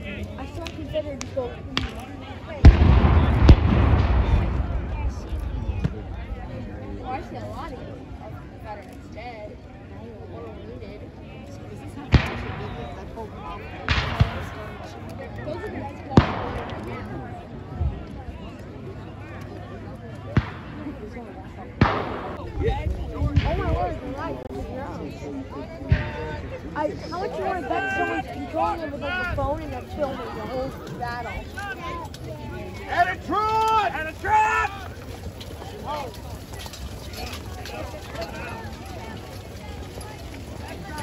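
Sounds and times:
spectators chatting: 0:00.0 - 0:41.0
blank gunshots with echo: 0:01.8 - 0:06.0, 0:12.1 - 0:13.0, 0:13.7 - 0:15.0, 0:16.2 - 0:17.1, 0:21.8 - 0:22.6
cannon booms: 0:02.6 - 0:06.0
low rolling rumble: 0:02.6 - 0:07.3.

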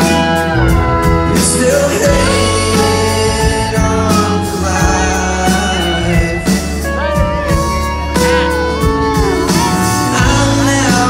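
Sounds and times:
acoustic guitar: 0:00.0 - 0:11.0
drums: 0:00.0 - 0:11.0
electric guitar: 0:00.0 - 0:11.0
sliding steel guitar: 0:00.0 - 0:11.0.

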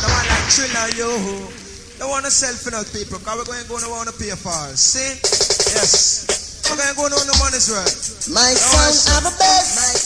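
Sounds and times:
person chanting rapidly: 0:00.0 - 0:01.8, 0:05.5 - 0:10.0
dancehall rhythm: 0:05.1 - 0:10.0
heavy bass notes: 0:06.6 - 0:09.9.

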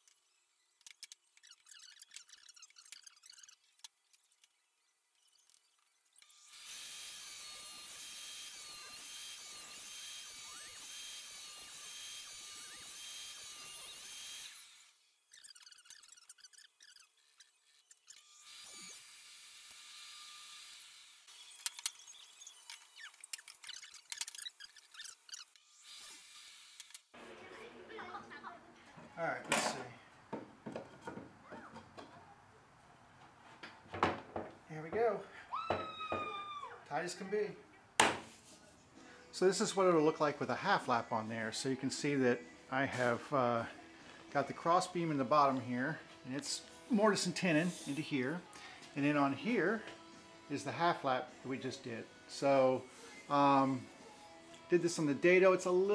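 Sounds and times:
table saw cutting wood: 0:06.3 - 0:15.1, 0:18.1 - 0:23.1, 0:25.0 - 0:27.5.

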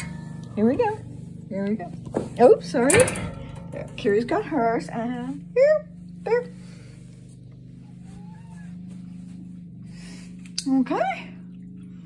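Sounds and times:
cat purring while eating: 0:05.4 - 0:12.0.

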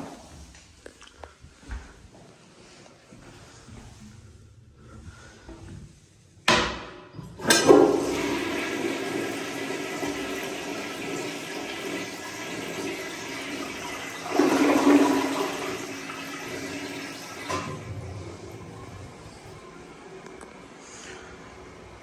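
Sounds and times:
toilet flushing: 0:07.2 - 0:22.0.

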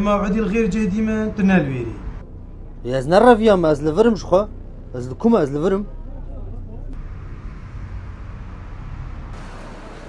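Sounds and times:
low rumble of passing cars: 0:00.0 - 0:10.0.

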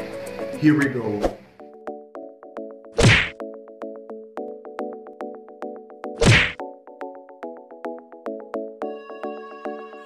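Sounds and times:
background music with plucked beat: 0:00.0 - 0:09.8.

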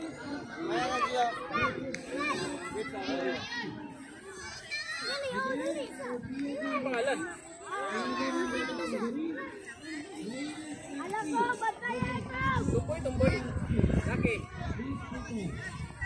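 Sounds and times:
children shouting: 0:00.0 - 0:13.5.

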